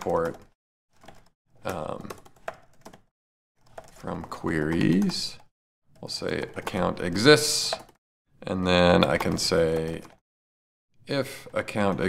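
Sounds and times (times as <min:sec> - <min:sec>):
computer keyboard typing: 0:00.0 - 0:08.0, 0:09.0 - 0:10.2.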